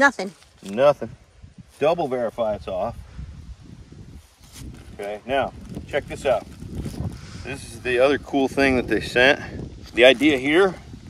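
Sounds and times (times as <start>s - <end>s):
plastic packet crinkling: 0.0s - 0.8s.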